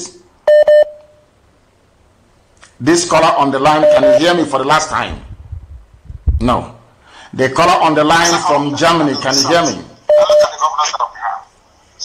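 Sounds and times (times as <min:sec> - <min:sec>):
telephone line beeps: 0:00.5 - 0:01.2, 0:03.8 - 0:04.2, 0:10.1 - 0:10.6
muffled voice through phone: 0:10.2 - 0:11.6.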